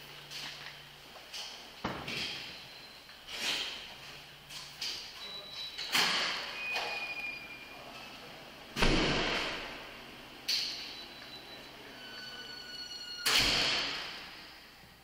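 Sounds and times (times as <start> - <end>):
faint high ringing tones: 2.3 - 3.1, 5.2 - 7.9, 10.6 - 13.3
heavy doors banging shut: 8.7 - 10.0, 13.0 - 14.5.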